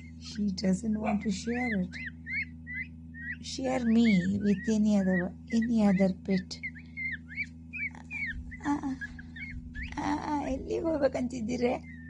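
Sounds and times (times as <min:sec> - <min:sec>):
chicks peeping: 0:00.0 - 0:12.0
steady low hum: 0:00.0 - 0:12.0.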